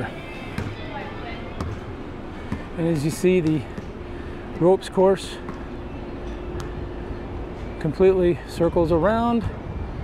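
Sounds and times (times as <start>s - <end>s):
faint music: 0.0s - 10.0s
wind: 0.0s - 10.0s.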